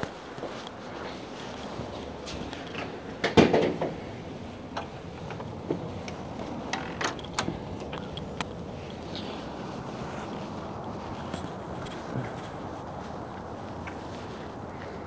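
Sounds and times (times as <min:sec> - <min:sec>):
footsteps: 0:00.0 - 0:03.2, 0:03.8 - 0:15.0
outdoor background hiss: 0:00.0 - 0:15.0
door opening with clatter: 0:06.5 - 0:08.2.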